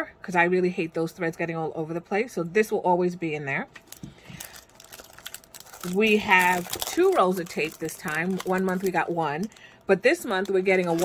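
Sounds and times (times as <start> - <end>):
plastic packaging crinkling: 3.8 - 11.0.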